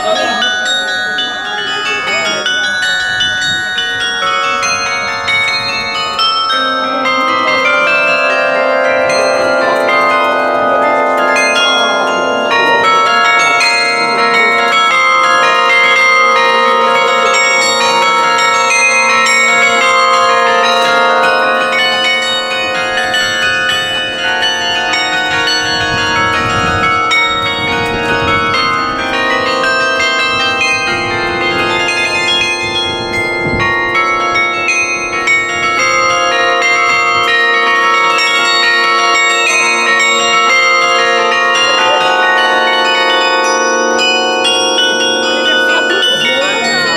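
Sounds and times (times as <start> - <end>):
carillon bells playing tune: 0.0 - 46.9.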